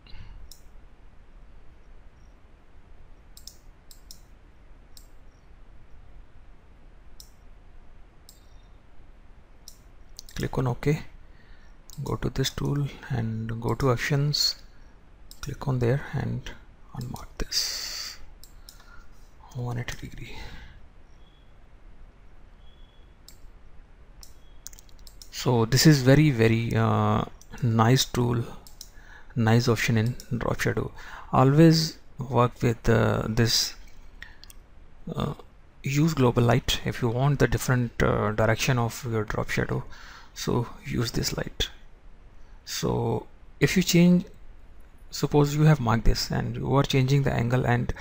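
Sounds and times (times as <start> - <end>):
faint low hum: 0.0 - 48.0
computer mouse clicks: 0.4 - 0.7, 3.3 - 4.3, 4.9 - 5.2, 7.2 - 7.4, 8.2 - 8.6, 18.4 - 19.1, 23.2 - 23.5, 24.2 - 25.3, 28.6 - 29.0.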